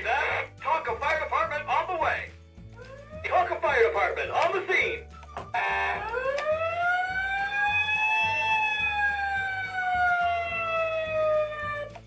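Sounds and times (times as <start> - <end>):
music with stepping bass: 0.0 - 12.0.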